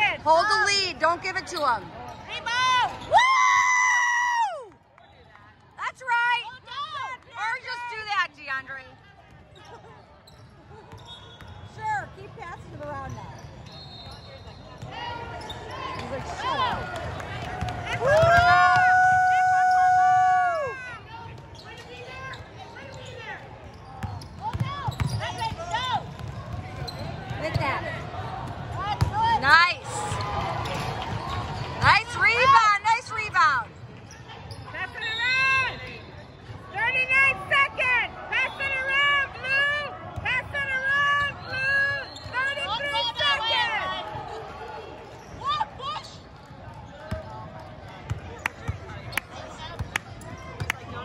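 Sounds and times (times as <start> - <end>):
sneakers squeaking on hardwood floor: 9.6 - 16.3, 21.3 - 27.8
basketball bouncing: 16.0 - 18.9, 23.8 - 27.8.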